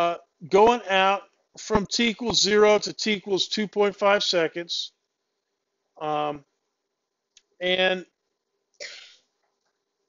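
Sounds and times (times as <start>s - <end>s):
person coughing: 8.8s - 9.2s.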